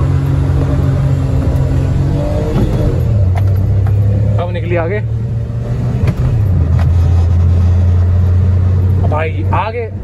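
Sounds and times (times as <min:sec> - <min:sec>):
car engine accelerating hard: 0:00.0 - 0:10.0
road rumble: 0:00.0 - 0:10.0.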